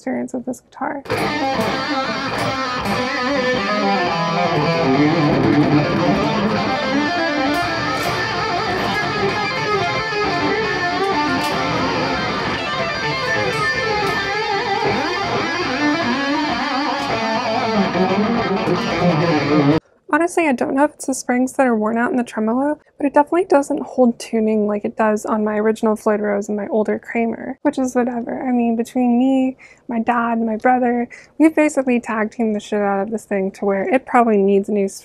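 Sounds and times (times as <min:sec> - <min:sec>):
electric guitar riffs: 0:01.1 - 0:19.8.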